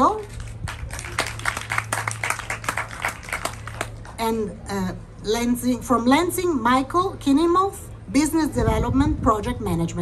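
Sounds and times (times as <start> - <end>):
people clapping irregularly: 0.3 - 4.2.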